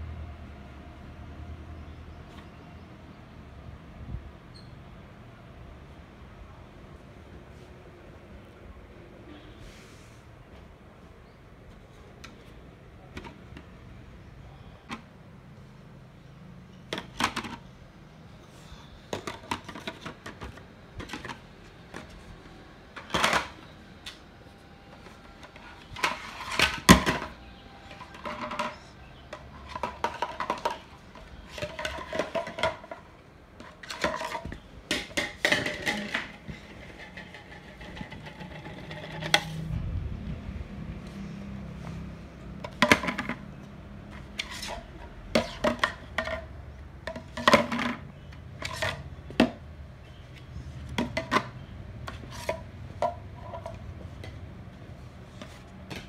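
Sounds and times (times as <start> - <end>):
plastic rings clacking: 25.4 - 39.6
low handling rumble: 39.4 - 42.6.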